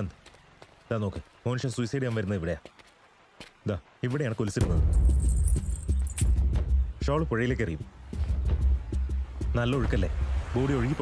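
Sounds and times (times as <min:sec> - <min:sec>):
light metallic jingle: 0:04.9 - 0:06.5.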